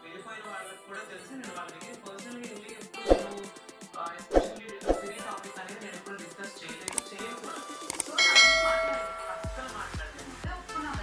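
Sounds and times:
background music with low beat: 1.4 - 11.0
bell-like notification chime: 8.2 - 9.7.

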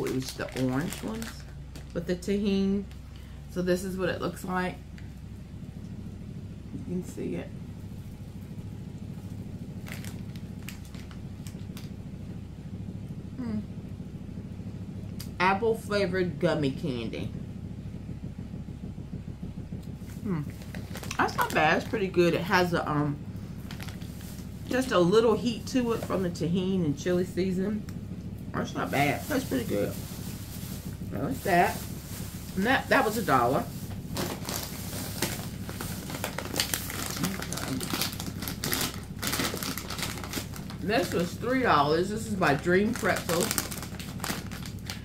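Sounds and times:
crinkly snack bag crackling: 0.0 - 2.1, 9.7 - 12.0, 20.4 - 22.1, 23.6 - 24.9, 28.8 - 45.0
low steady room hum: 0.0 - 45.0.

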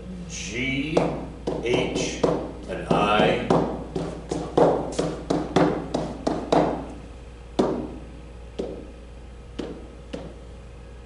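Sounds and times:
pen tapping on whiteboard: 1.0 - 6.9, 7.6 - 8.0, 8.6 - 8.9, 9.6 - 10.4.

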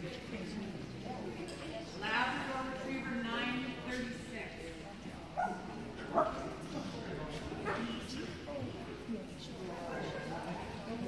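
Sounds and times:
low chatter of people: 0.0 - 11.0.

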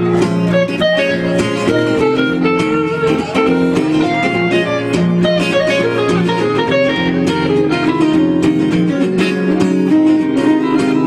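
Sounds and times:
guitar picking notes over chords: 0.0 - 11.0.

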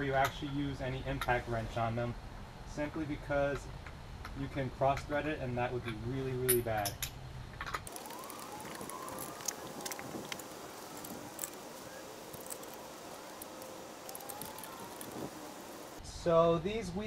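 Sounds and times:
faint tone rising and falling: 7.9 - 16.0.

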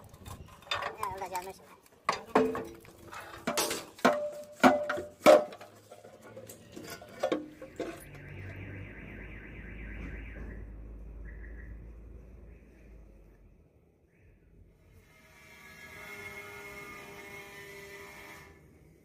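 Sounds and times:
steel panels clanking: 2.0 - 8.2.

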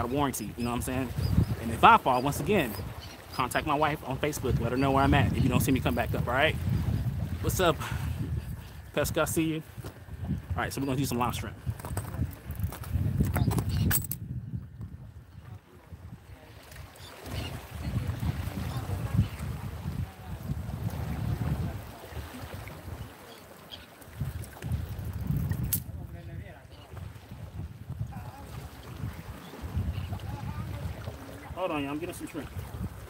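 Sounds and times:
wind buffeting microphone: 0.0 - 23.2, 24.1 - 33.0.

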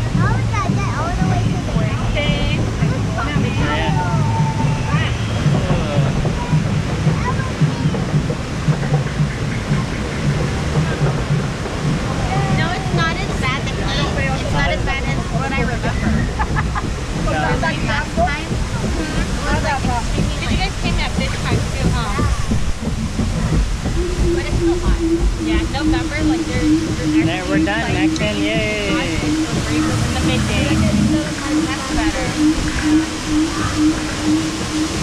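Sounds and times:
riders chattering: 0.0 - 35.0
water rushing around raft: 0.0 - 35.0.

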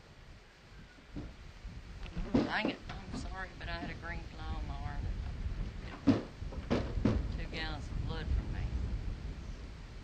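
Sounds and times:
horse hooves thumping on trailer ramp: 1.0 - 7.7.

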